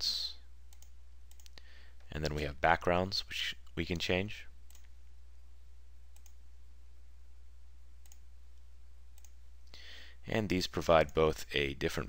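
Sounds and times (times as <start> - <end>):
computer mouse clicking: 0.7 - 1.6, 4.7 - 4.9, 6.2 - 6.4, 8.0 - 8.2, 9.2 - 9.4.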